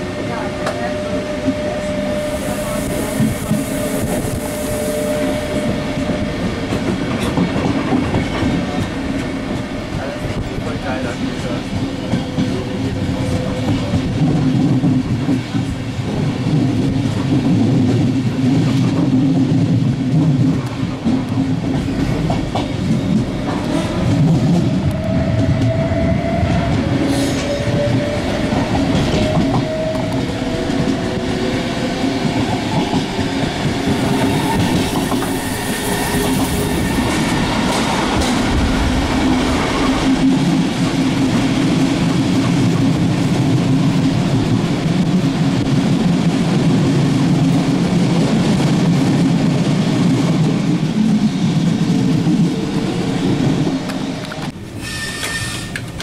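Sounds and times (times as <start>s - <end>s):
rumble of train wheels on track: 0.0s - 56.0s.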